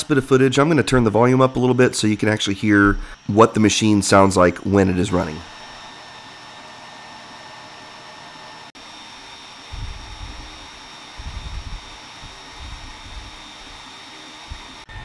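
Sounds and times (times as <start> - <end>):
high whining tones: 0.0 - 15.0
laser engraver hissing: 1.2 - 15.0.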